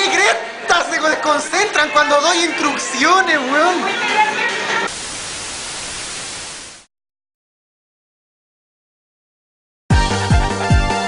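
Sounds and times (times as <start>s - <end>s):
static hiss: 4.9s - 6.9s.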